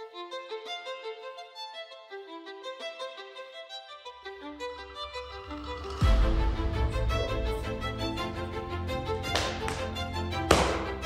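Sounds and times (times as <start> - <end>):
fiddle folk music: 0.0 - 11.0.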